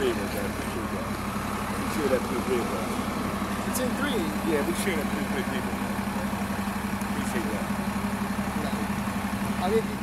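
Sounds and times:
faint voices: 0.0s - 10.0s
street noise: 0.0s - 10.0s
vehicle engine idling: 0.0s - 10.0s.

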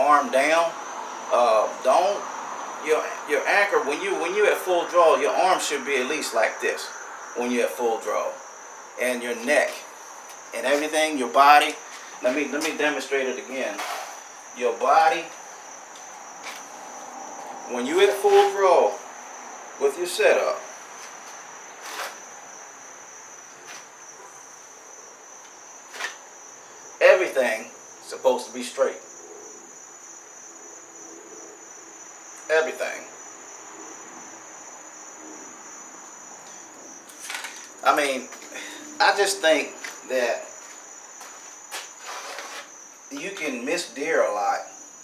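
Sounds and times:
bow rustles and clicks: 37.1s - 37.8s.

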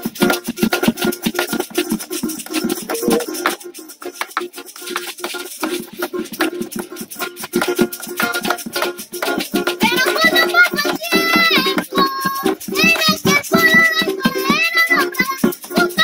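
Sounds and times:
bucket drum beaten with sticks: 0.0s - 16.0s
maracas shaking: 0.0s - 16.0s
strummed cuatro: 0.0s - 16.0s.

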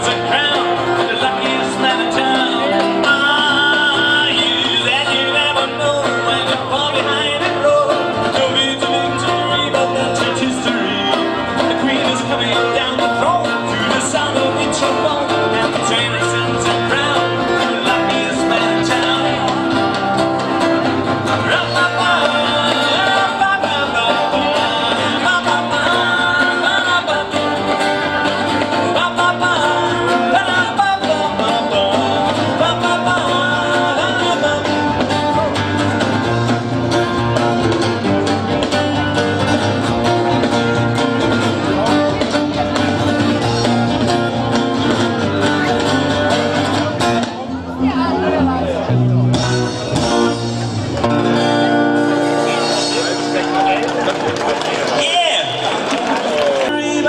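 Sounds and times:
electric bass: 0.0s - 54.9s
strummed acoustic guitar: 0.0s - 55.9s
drums: 0.0s - 57.0s
mandolin: 0.0s - 57.0s.

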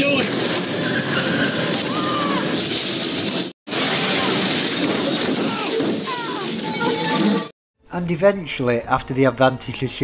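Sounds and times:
high squeal: 0.8s - 2.6s.

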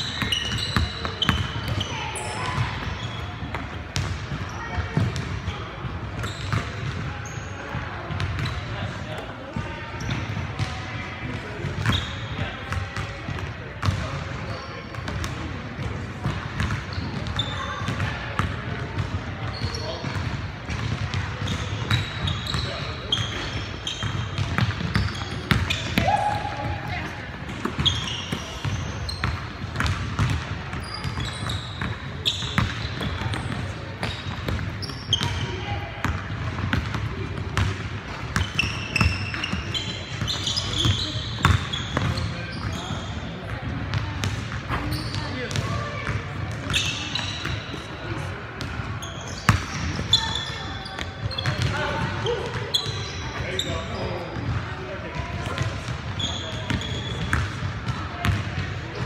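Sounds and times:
sneakers squeaking: 0.0s - 59.0s
basketball bouncing on wood floor: 29.2s - 30.8s.

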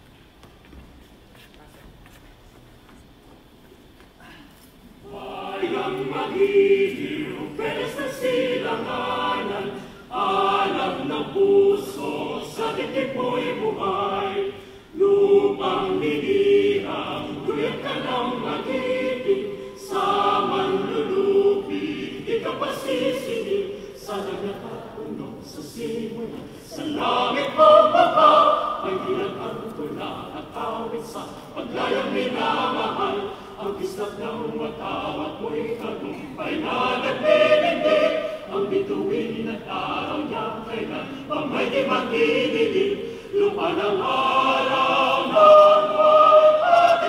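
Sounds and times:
mixed chorus singing: 5.0s - 47.0s.

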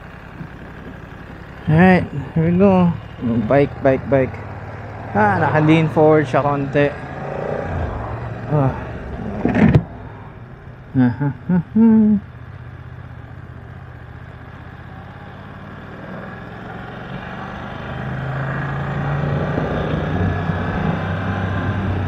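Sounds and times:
motorcycle engine accelerating: 0.0s - 22.0s
road noise: 0.0s - 22.0s.

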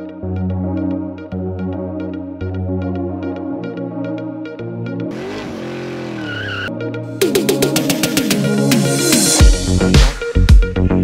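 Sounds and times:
wavering high squeal: 6.0s - 6.8s.

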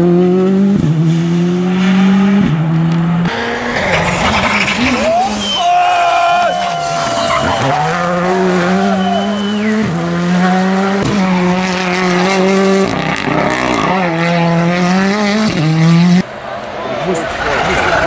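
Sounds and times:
rally car engines revving hard: 0.0s - 18.0s
tyres squealing: 3.7s - 9.9s.

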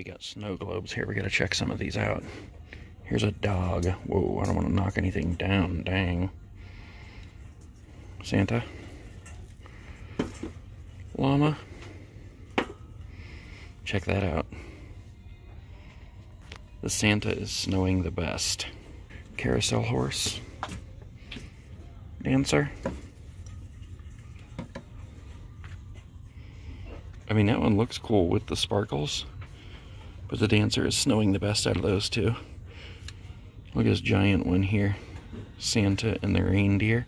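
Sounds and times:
low steady background hum: 0.0s - 37.0s.

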